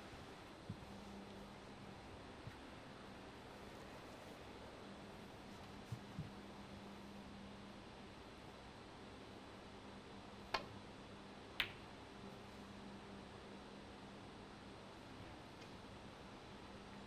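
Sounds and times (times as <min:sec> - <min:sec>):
low steady hum: 0:00.0 - 0:17.0.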